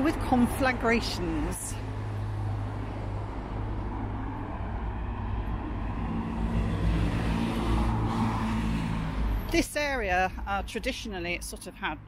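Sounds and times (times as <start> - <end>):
road traffic rumble: 0.0 - 12.0
vehicle passing close by: 1.3 - 9.6.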